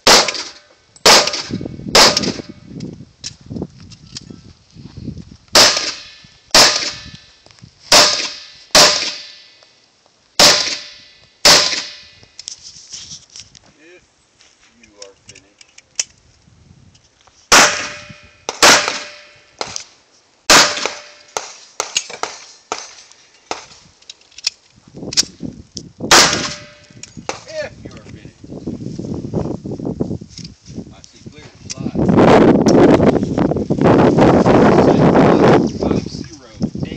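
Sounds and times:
handgun shots: 0.0 - 2.5, 7.9 - 9.4, 10.4 - 12.1, 17.5 - 19.8, 20.5 - 22.9, 26.1 - 27.4.

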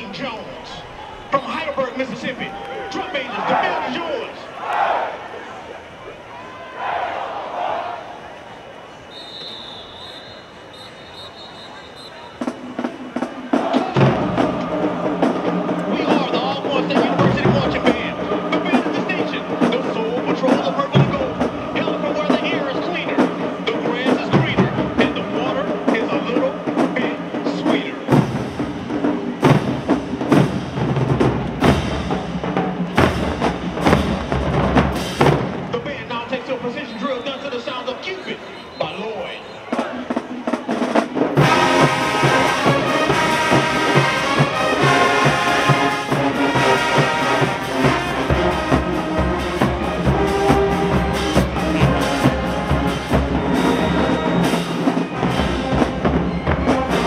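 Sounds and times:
brass horn chords: 9.1 - 28.8, 41.4 - 57.0
marching drum hits: 12.3 - 19.0, 28.1 - 35.8.

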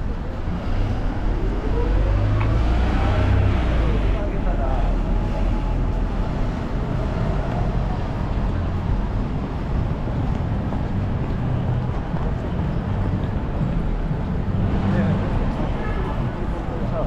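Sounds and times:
road traffic with deep rumble: 0.0 - 17.0.

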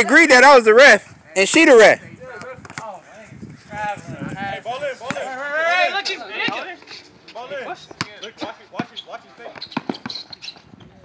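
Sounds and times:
young men talking and calling out: 0.0 - 10.0.

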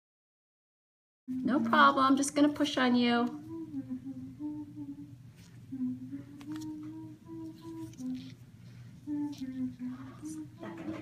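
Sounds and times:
woman humming: 1.3 - 2.2, 3.2 - 11.0.

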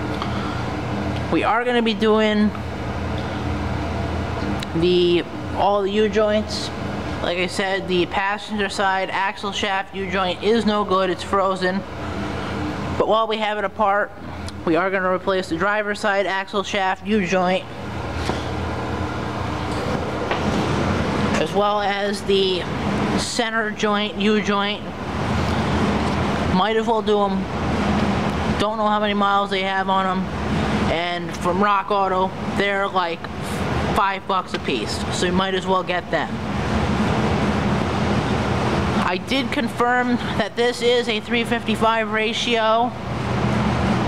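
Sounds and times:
faint hum: 0.0 - 44.0.

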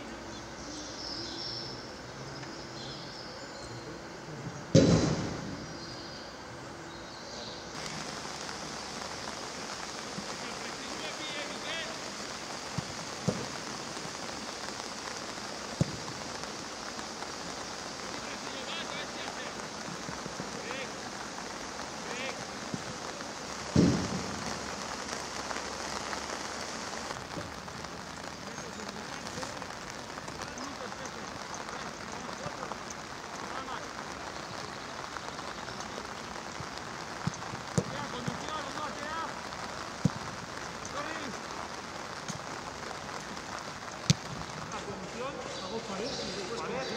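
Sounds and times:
steady rain hiss: 0.0 - 46.9
loud thud: 4.7 - 5.6, 23.7 - 24.4.

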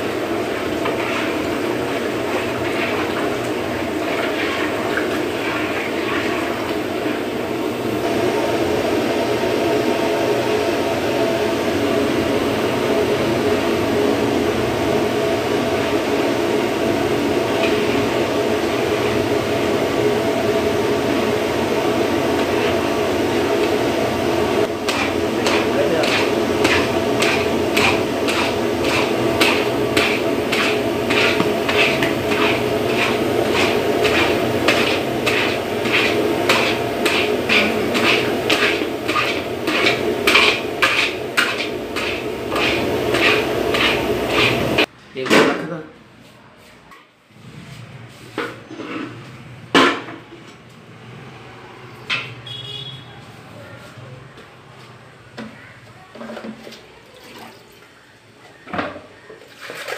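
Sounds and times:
milk boiling and bubbling: 0.0 - 44.9
metal ladle scraping a pan: 0.4 - 7.2, 24.7 - 44.9, 48.1 - 50.0.

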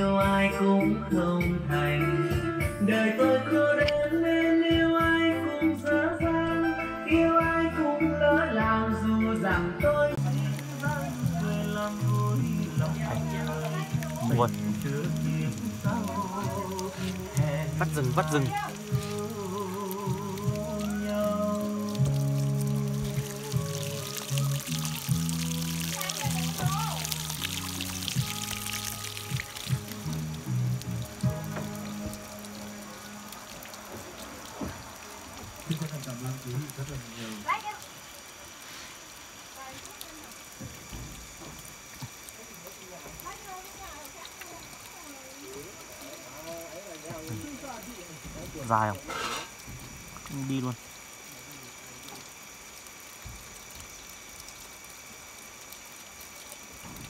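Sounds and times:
background music: 0.0 - 34.1
water splashing on wooden planks: 10.2 - 57.0.

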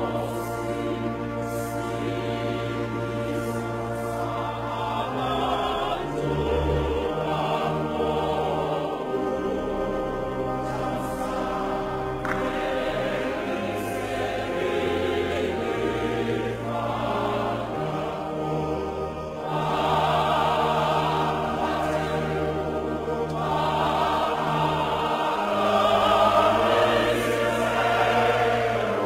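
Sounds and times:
choir singing held chords: 0.0 - 29.0.

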